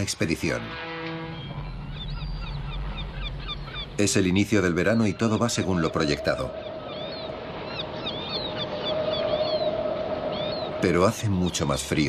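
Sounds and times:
steady low drone: 0:00.0 - 0:07.7
birds chirping: 0:00.0 - 0:12.0.

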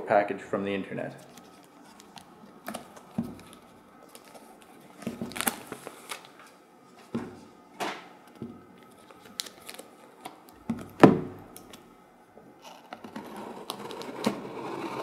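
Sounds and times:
blade scraping packing tape: 0:12.6 - 0:15.0.

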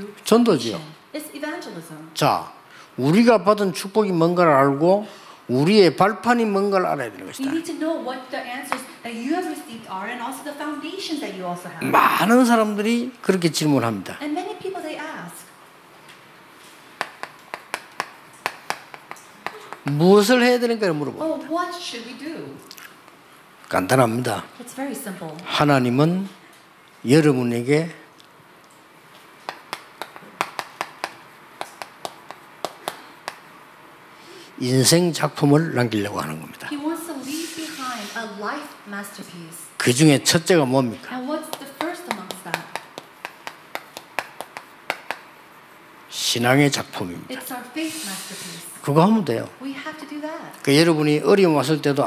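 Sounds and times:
chalk tapping on chalkboard: 0:16.9 - 0:20.1, 0:29.4 - 0:33.5, 0:41.5 - 0:45.4.

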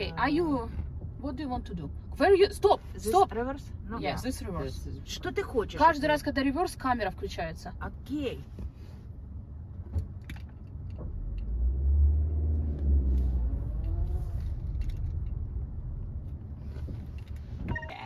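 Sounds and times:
car engine rumble from inside: 0:00.0 - 0:18.0.

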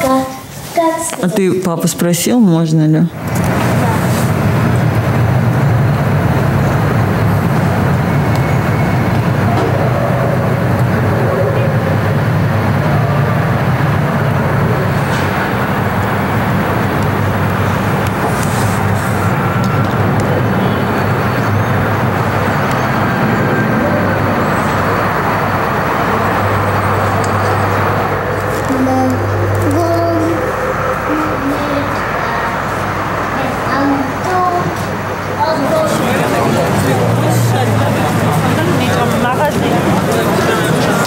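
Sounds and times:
traffic rumble: 0:00.0 - 0:41.0.

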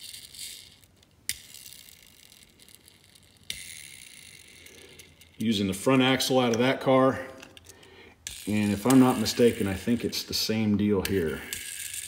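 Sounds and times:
toy car wheel flicked: 0:00.0 - 0:05.4
wheel spinning whir: 0:00.0 - 0:05.4, 0:11.2 - 0:12.0.

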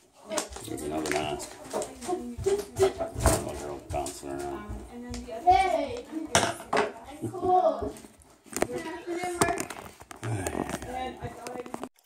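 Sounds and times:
man speaking: 0:10.2 - 0:10.9.

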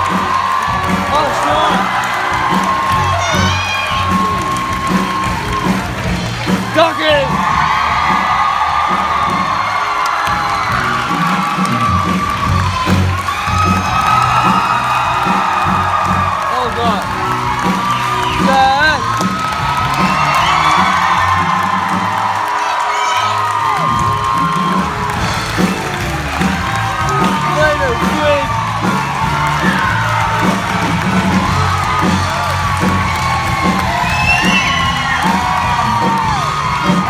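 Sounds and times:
audience cheering and whooping: 0:00.0 - 0:37.0
band accompaniment: 0:00.0 - 0:37.0.

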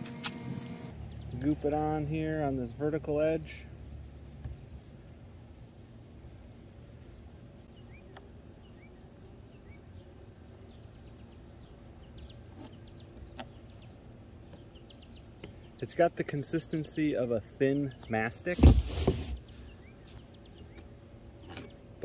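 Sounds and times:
low steady hiss: 0:01.3 - 0:22.0
faint bird chirps: 0:07.6 - 0:15.9.

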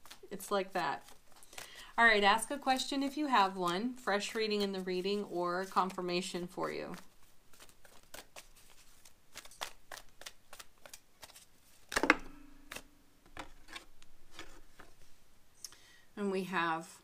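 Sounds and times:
cards being shuffled: 0:00.0 - 0:15.1.

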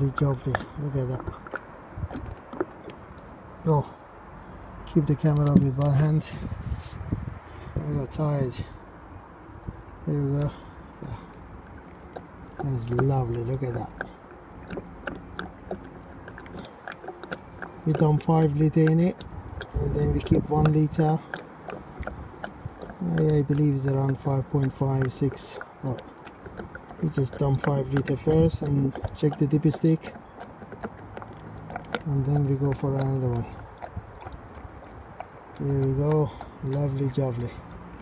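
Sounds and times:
oil glugging through a funnel: 0:00.0 - 0:03.9, 0:04.9 - 0:08.6, 0:10.1 - 0:38.0
light clicks and patter: 0:11.8 - 0:38.0.

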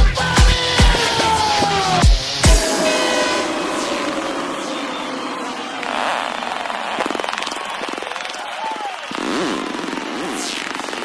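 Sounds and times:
crowd noise: 0:00.4 - 0:11.0
buzzy synthesizer sweeps: 0:01.8 - 0:08.3.

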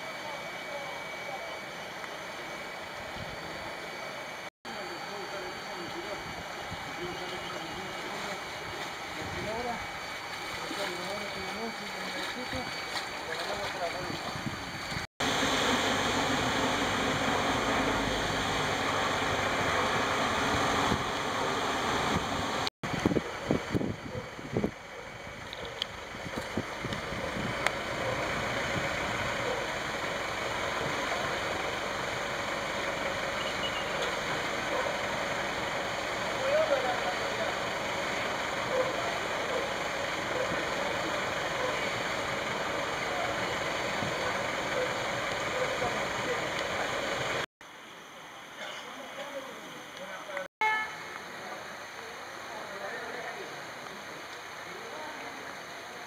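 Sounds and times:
vehicle engine in deep water: 0:00.0 - 0:47.5
floodwater rushing: 0:06.4 - 0:23.7
water splashing: 0:07.2 - 0:17.1.

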